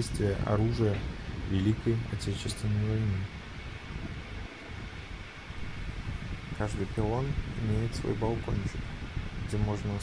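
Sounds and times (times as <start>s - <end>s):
faint steady hiss: 0.0s - 10.0s
wind buffeting microphone: 0.0s - 10.0s.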